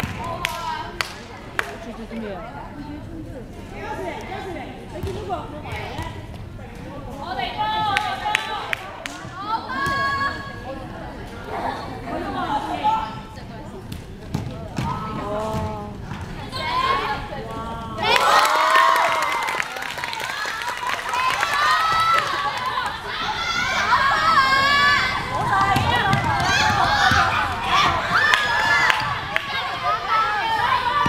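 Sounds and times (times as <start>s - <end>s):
basketball bouncing on wooden court: 25.4s - 27.4s.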